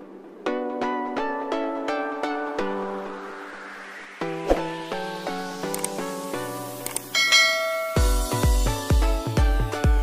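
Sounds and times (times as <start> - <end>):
background music with struck notes: 0.4 - 10.0
bright bell chime: 7.1 - 8.6.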